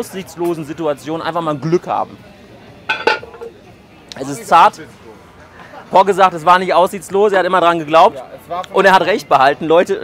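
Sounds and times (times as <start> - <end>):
metallic clink on cast iron pot: 2.9 - 3.5.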